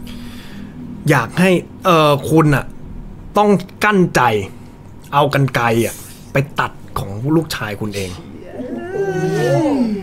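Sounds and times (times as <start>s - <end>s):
man groaning: 8.1s - 10.0s.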